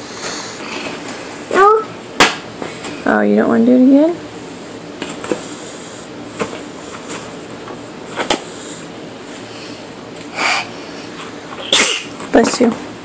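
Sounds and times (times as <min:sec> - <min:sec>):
loud sneeze: 0:11.6 - 0:12.2.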